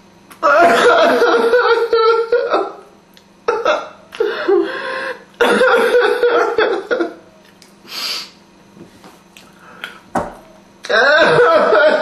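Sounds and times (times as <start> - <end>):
man sobbing and wailing: 0.4 - 2.8, 3.5 - 7.2, 10.9 - 12.0.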